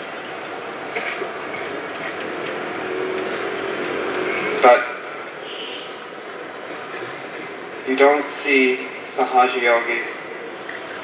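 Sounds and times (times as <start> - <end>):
rushing background noise: 0.0 - 11.0.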